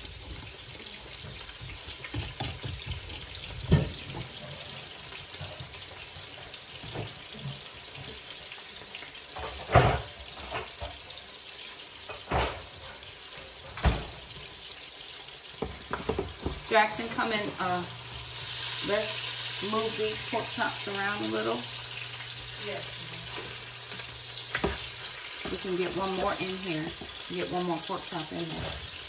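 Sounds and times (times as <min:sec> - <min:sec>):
meat sizzling in a skillet: 0:00.0 - 0:29.0.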